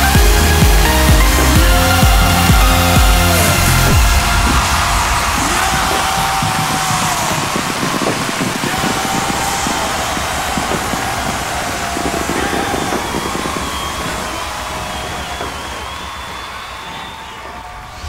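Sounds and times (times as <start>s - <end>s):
electronic dance music: 0.0s - 17.6s
crowd cheering: 0.0s - 18.0s.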